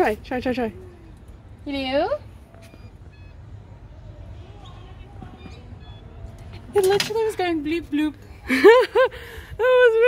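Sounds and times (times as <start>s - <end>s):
faint distant voices: 0.0s - 10.0s.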